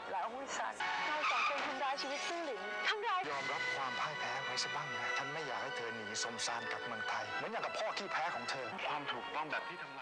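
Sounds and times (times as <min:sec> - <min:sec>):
background music: 0:00.0 - 0:10.0
dialogue: 0:00.0 - 0:10.0
noisy screech: 0:00.8 - 0:02.0.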